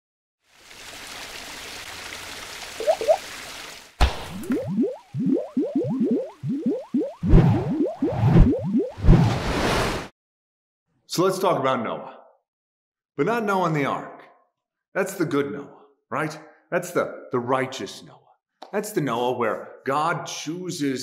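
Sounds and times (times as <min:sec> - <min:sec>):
short rising bloops: 0:02.8 - 0:03.2, 0:04.1 - 0:09.4.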